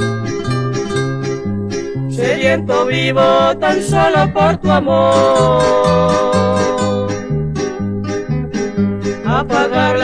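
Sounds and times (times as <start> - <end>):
alternating bass line: 0.0 - 10.0
strummed acoustic guitar chords: 0.0 - 10.0.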